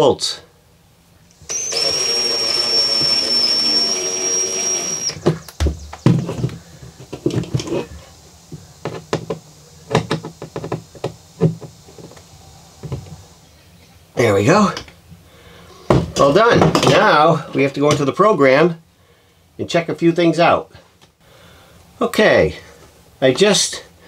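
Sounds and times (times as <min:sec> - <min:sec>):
cordless screwdriver motor running: 0:01.5 - 0:05.2.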